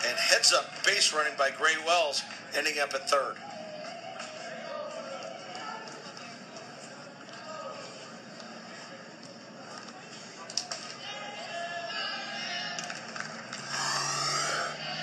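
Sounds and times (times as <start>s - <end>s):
faint television voices: 0.0s - 15.0s
television music: 0.0s - 15.0s.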